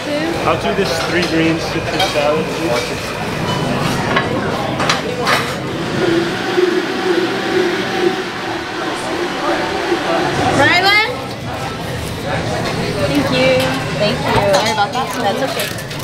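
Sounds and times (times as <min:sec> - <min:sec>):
dishes clinking: 0:00.5 - 0:05.6
background voices: 0:01.6 - 0:12.9
blender running: 0:05.1 - 0:11.5.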